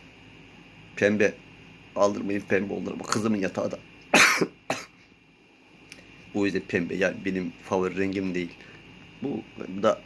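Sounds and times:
man coughing: 4.1s - 5.0s.

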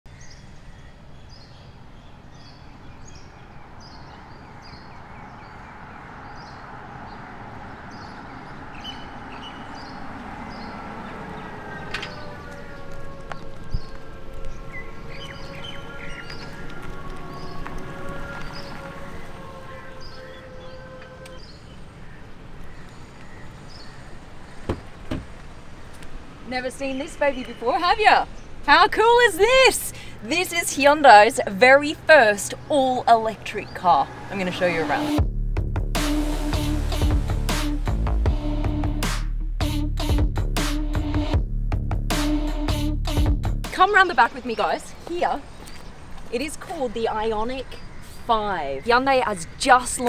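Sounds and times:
bird chirping: 0.1s - 25.6s, 43.8s - 50.0s
tyre and road noise: 0.1s - 50.0s
sharp knocks: 24.7s - 25.4s.

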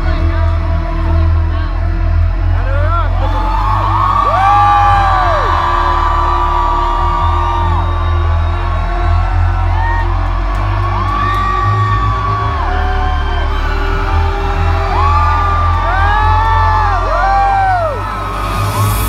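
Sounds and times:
low bass drone: 0.0s - 19.0s
crowd whooping and screaming: 3.1s - 19.0s.

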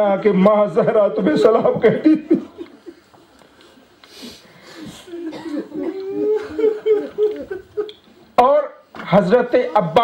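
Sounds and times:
man coughing: 5.2s - 6.0s
man speaking: 8.4s - 10.0s.

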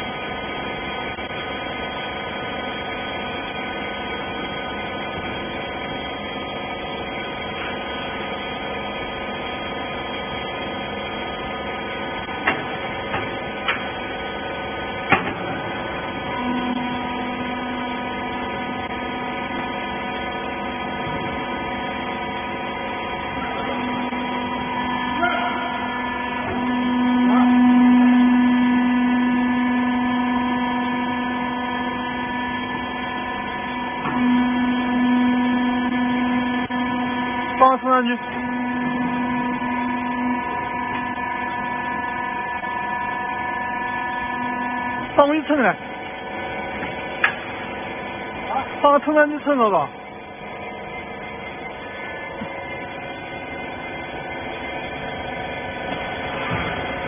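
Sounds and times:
hydraulic power unit humming: 0.0s - 57.0s
hydraulic pump droning: 0.0s - 57.0s.

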